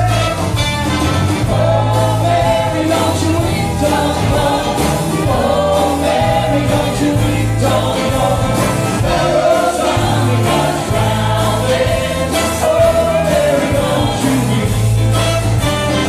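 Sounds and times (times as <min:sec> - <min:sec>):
folk band playing gospel song: 0:00.0 - 0:16.0
voices singing together: 0:01.4 - 0:15.0.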